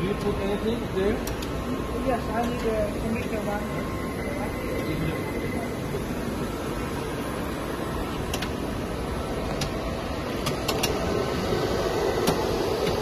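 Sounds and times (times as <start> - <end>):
steady mechanical drone: 0.0 - 13.0.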